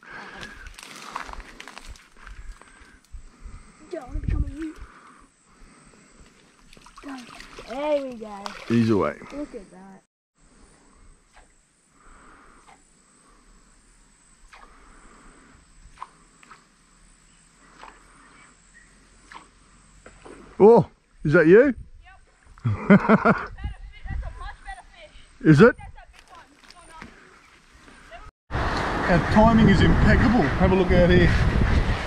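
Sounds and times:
insect drone: 0.0s - 28.2s
fish splashing in shallow water: 6.2s - 9.5s
faint chirps: 9.3s - 20.5s.

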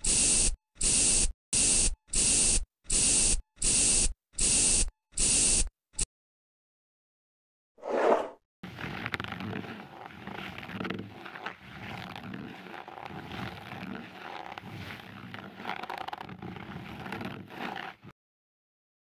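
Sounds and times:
rough scraping and crackling: 7.8s - 18.1s.

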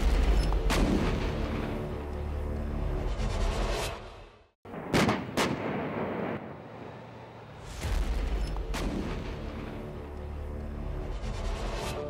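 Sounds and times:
gunshot sound effects: 0.0s - 1.6s, 7.7s - 9.7s.

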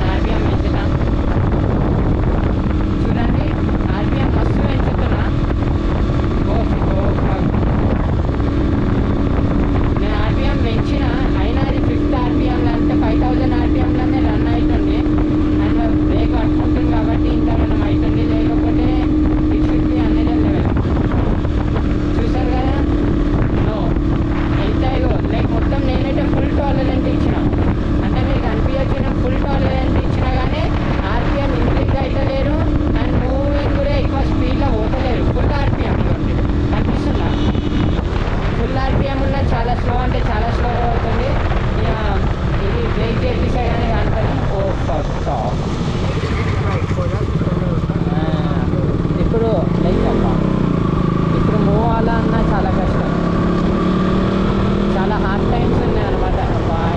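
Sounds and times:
people talking: 0.0s - 1.2s, 3.0s - 5.5s, 6.4s - 8.3s, 9.9s - 20.9s, 22.0s - 50.7s, 51.3s - 53.5s, 54.6s - 56.9s
motorcycle engine cruising: 0.0s - 56.9s
wind on microphone: 0.0s - 56.9s.

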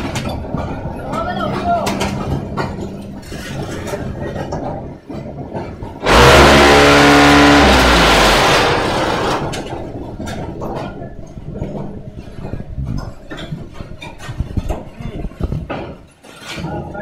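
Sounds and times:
vibrator motors humming: 6.0s - 10.6s.

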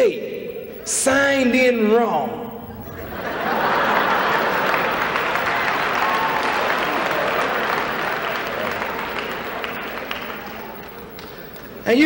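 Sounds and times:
audience applauding: 2.8s - 11.8s.

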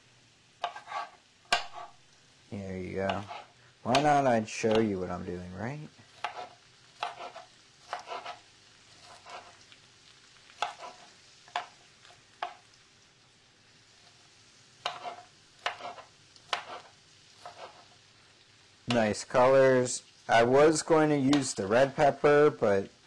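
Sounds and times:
knife dicing on cutting board: 0.6s - 2.0s, 3.1s - 4.9s, 6.2s - 8.4s, 10.6s - 11.8s, 14.8s - 17.8s.

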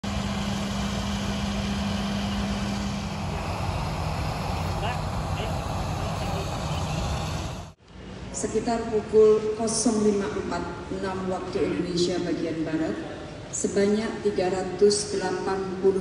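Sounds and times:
aircraft engine noise: 0.0s - 7.8s.

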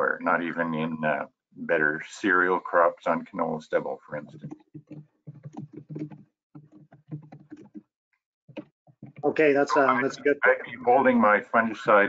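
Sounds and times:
keyboard typing clicks: 4.2s - 7.8s.

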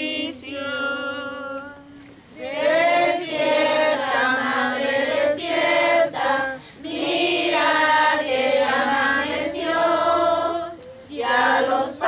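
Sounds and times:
girls and women singing together: 0.0s - 12.0s.

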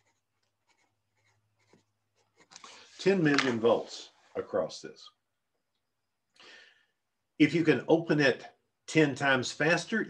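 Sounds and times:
pencil scratching on paper: 0.0s - 3.3s.

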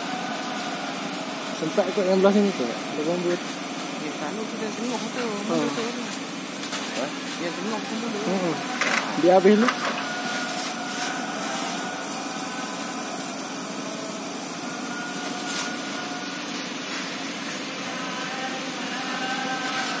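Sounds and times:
large fire rushing: 0.4s - 14.6s, 15.2s - 17.8s.

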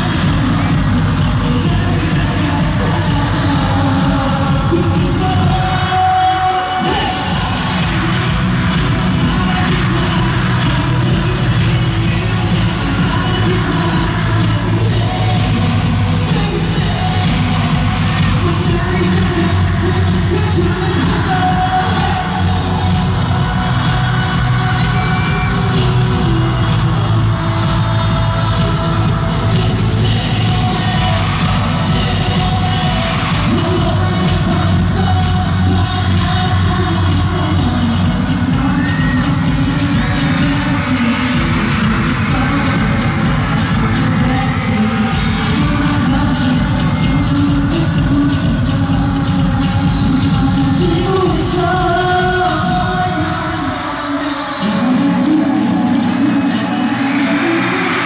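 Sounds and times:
man singing: 0.0s - 58.0s
pop dance track over sound system: 0.0s - 58.0s.

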